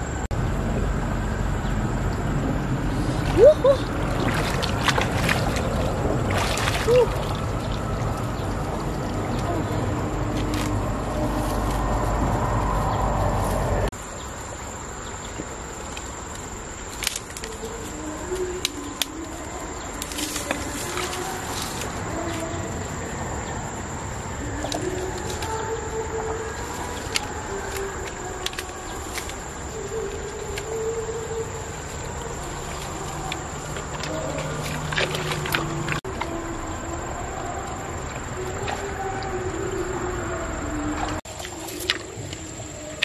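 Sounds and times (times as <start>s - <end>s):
water sloshing and splashing: 2.0s - 43.0s
dry reeds crackling: 16.7s - 22.8s, 24.6s - 36.3s.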